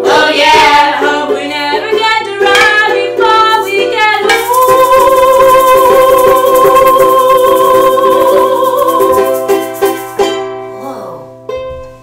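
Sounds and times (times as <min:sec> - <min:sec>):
ukulele strumming chords: 0:00.0 - 0:12.0.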